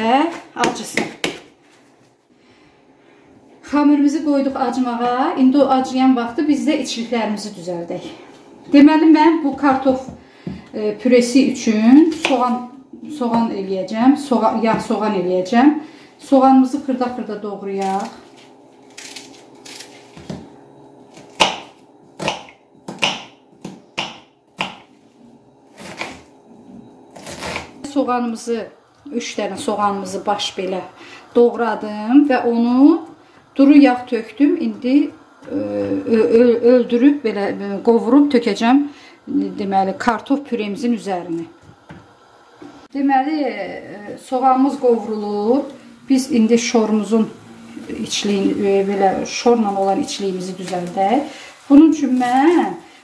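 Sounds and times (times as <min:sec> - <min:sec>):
knife chopping on wooden board: 0:21.3 - 0:24.8.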